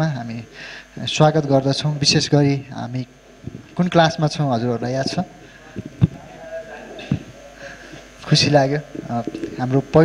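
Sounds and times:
man speaking into microphone: 0.0 - 10.0.

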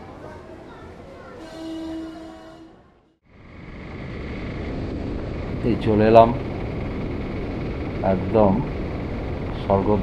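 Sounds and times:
outdoor street noise: 0.0 - 10.0.

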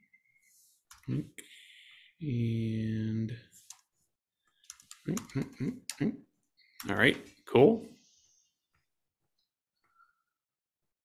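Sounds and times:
man making short vocal sounds: 1.0 - 1.4, 5.0 - 6.3.

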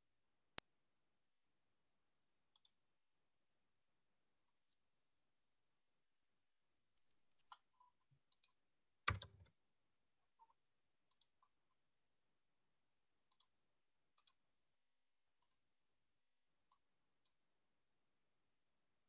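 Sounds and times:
keyboard and mouse clicks: 8.3 - 9.6, 14.2 - 14.4.

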